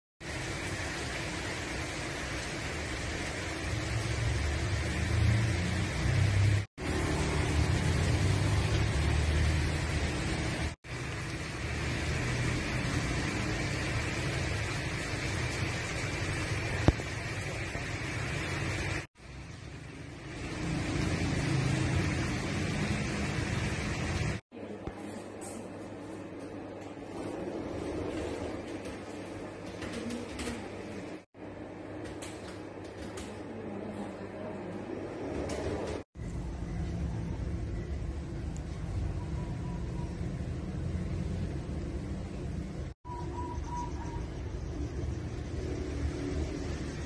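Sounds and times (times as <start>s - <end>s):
road traffic noise: 0.2s - 24.5s, 34.7s - 47.0s.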